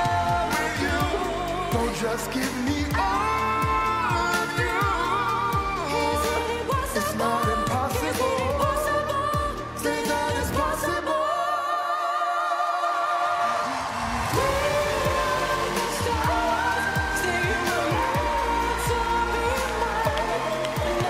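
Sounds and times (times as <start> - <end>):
pop duet singing: 0.0 - 21.0
backing band: 14.1 - 21.0.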